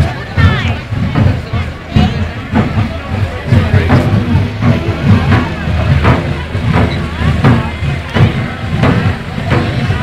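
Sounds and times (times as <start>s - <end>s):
vehicle engine running: 0.0s - 10.0s
regular thump: 0.4s - 10.0s.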